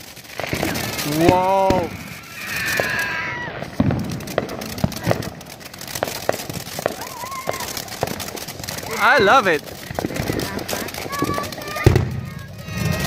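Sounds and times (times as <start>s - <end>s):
firework spraying sparks: 0.0s - 13.0s
sharp crackling pops: 0.0s - 13.0s.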